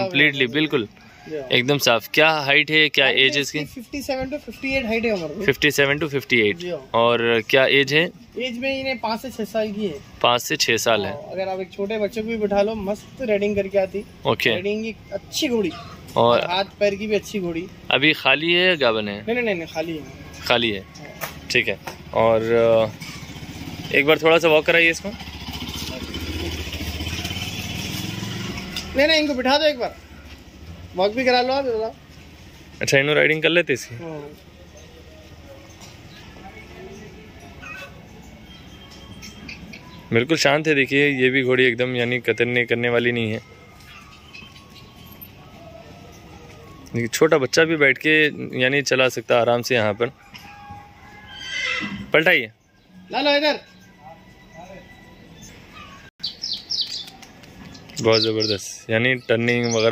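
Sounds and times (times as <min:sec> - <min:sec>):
man speaking: 0:00.0 - 0:22.9
motorcycle engine idling: 0:22.0 - 0:29.2
horse whinnying: 0:50.5 - 0:52.2.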